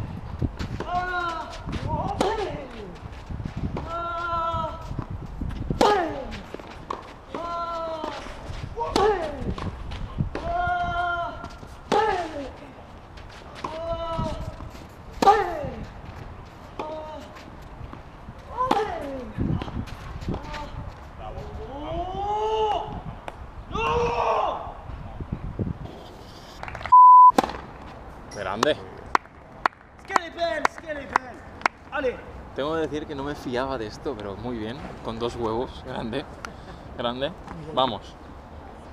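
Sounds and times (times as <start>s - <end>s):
short steady beep: 26.9s - 27.4s.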